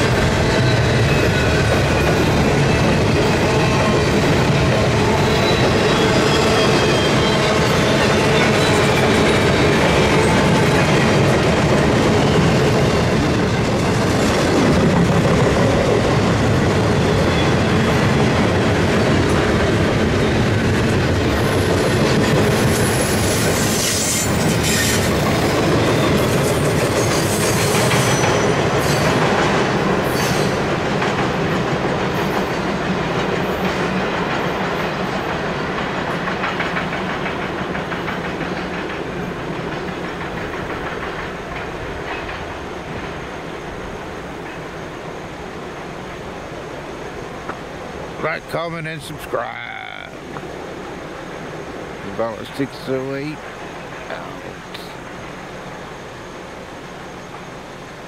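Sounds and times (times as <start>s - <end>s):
freight train wheels rumbling on rails: 0.0s - 58.0s
high-pitched wheel squeals: 22.7s - 25.1s.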